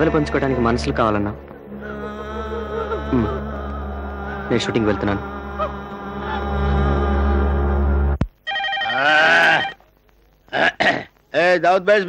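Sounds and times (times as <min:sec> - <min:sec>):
film music: 0:00.0 - 0:08.7
telephone ringing: 0:08.4 - 0:09.8.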